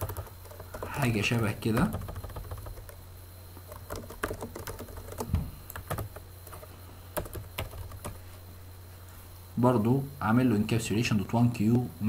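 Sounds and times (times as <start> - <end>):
computer keyboard clicking: 0.0 - 1.2, 1.8 - 3.0, 3.6 - 8.2
steady low hum: 0.0 - 12.0.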